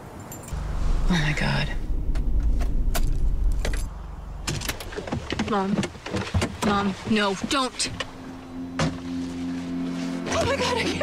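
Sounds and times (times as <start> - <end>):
low rumble: 0.5 - 5.4.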